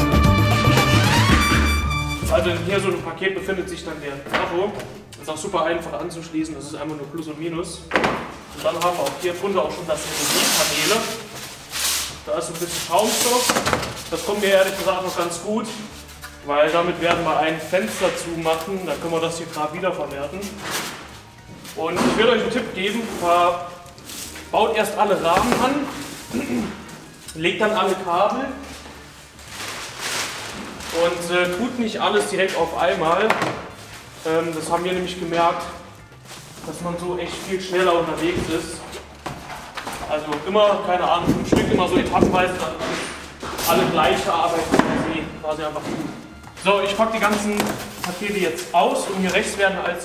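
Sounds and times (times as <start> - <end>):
people talking: 2.2 - 7.8, 8.6 - 11.2, 12.3 - 13.5, 16.5 - 20.6, 21.8 - 23.6, 24.6 - 28.6, 30.9 - 33.3, 36.7 - 38.9, 40.0 - 50.0
plastic bag rustling: 8.3 - 50.0.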